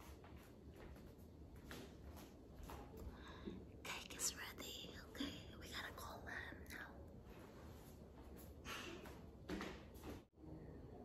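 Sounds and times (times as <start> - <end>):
woman whispering: 3.8 - 7.1.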